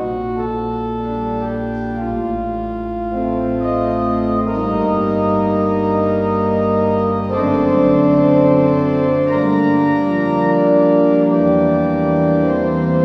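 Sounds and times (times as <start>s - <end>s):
pipe organ playing held chords: 0.0s - 13.0s.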